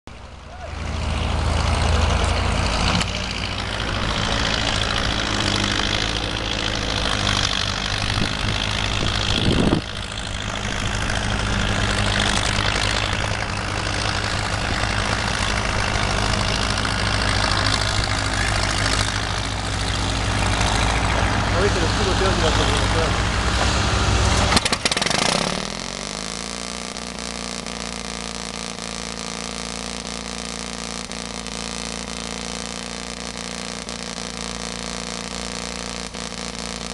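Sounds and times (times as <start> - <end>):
diesel tractor engine running: 0.1 - 36.9.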